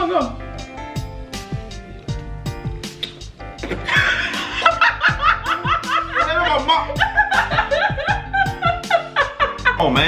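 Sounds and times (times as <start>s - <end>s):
background music with beat: 0.0s - 10.0s
woman laughing loudly: 3.6s - 9.8s.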